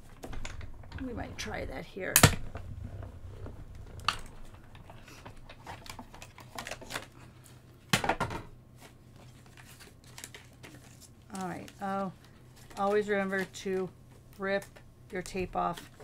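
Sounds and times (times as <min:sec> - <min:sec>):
paper and tape rustling: 0:03.8 - 0:07.6, 0:08.7 - 0:16.0.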